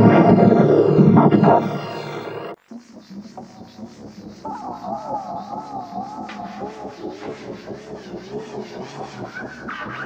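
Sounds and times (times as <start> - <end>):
dense hum: 0.0 - 10.0
warbling distorted tone: 0.0 - 10.0.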